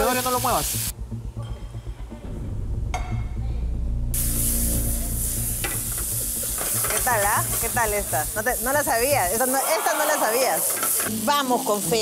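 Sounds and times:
chicken sizzling in a pan: 0.0 - 0.9, 4.2 - 12.0.

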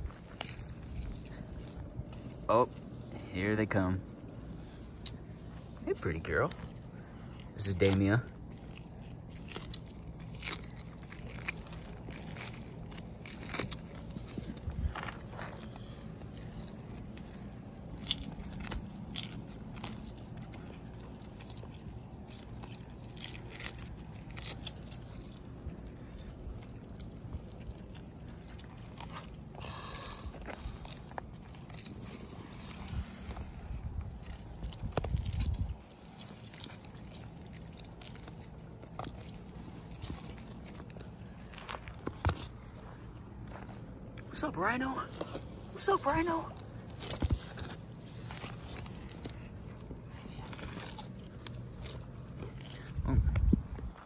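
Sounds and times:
tortoises chewing cactus: 0.0 - 54.0.

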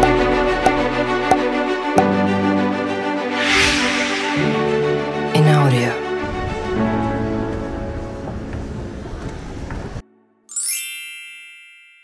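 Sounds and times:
rising shimmer: 3.3 - 5.3.

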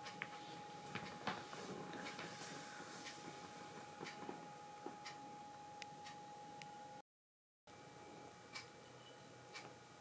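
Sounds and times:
faint high hum: 0.0 - 7.0, 7.7 - 10.0.

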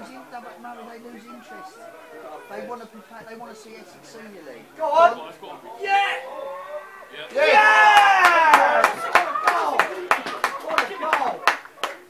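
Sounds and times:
people shouting and cheering: 5.6 - 12.0
spectators clapping: 7.3 - 12.0.

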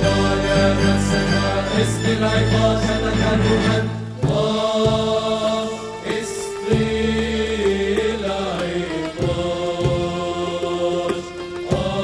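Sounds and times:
male vocal group singing: 0.0 - 12.0.

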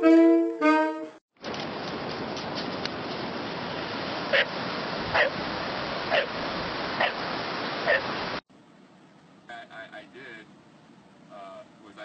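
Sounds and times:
dog barking: 4.3 - 4.5, 5.1 - 5.4, 6.1 - 6.4, 7.0 - 7.2, 7.8 - 8.1.

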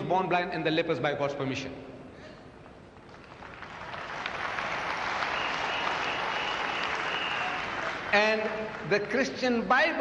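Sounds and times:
audience applauding: 3.0 - 9.4.

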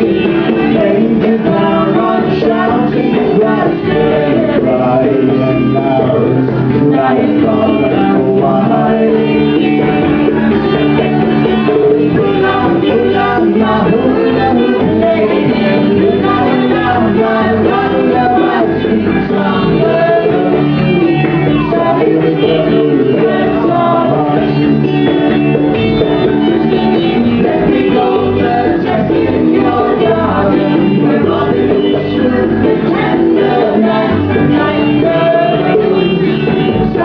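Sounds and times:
woman singing: 0.0 - 24.9, 26.9 - 37.0
acoustic guitars: 0.0 - 37.0.

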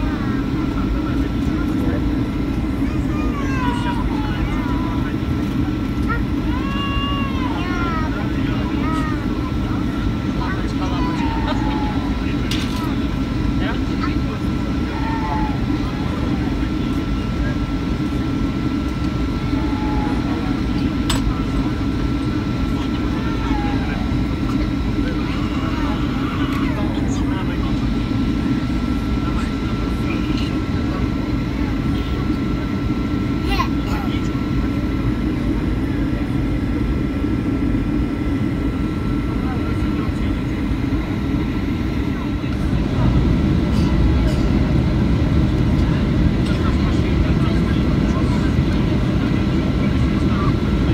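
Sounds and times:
aircraft cabin engine rumble: 0.0 - 50.9.

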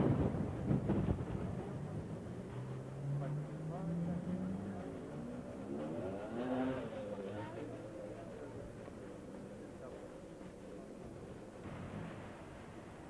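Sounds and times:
faint voices: 1.4 - 13.0.

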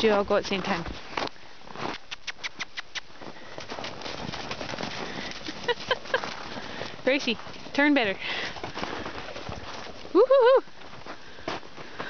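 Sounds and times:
horse hooves on packed snow: 0.0 - 12.0.

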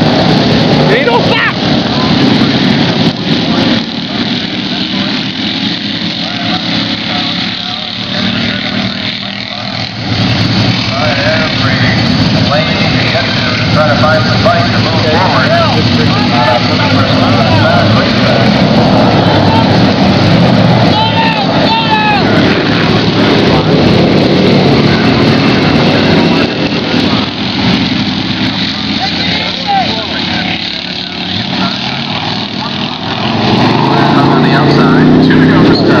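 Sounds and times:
people's voices: 0.0 - 36.0
vehicle engines running: 0.0 - 36.0.

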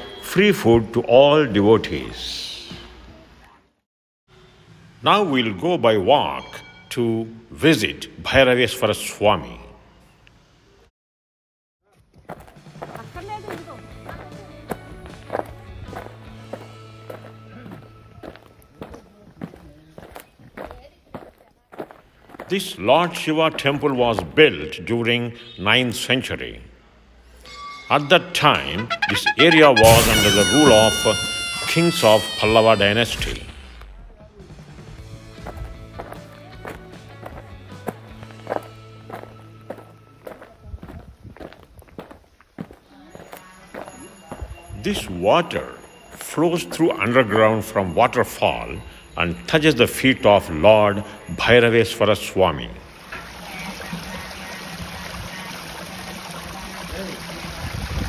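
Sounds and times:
footsteps on concrete: 12.0 - 22.6, 35.1 - 44.5
background music with held notes: 12.8 - 19.2, 28.4 - 32.4, 34.5 - 40.6.

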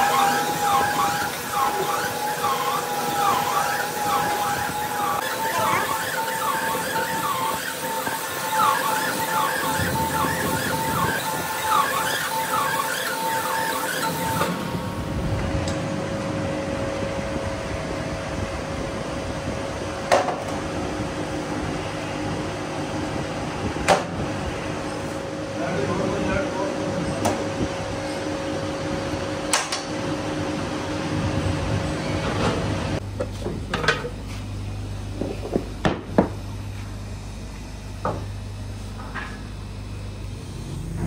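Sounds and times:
machinery humming: 0.0 - 41.0.

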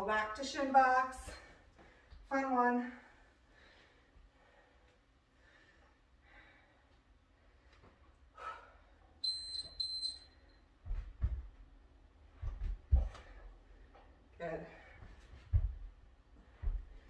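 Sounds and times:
short high electronic beeps: 9.2 - 10.4
low thuds on floor mat: 10.8 - 11.6.

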